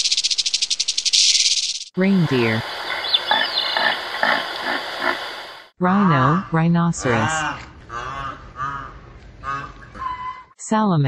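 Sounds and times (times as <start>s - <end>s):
reindeer grunting: 6.1s - 10.4s.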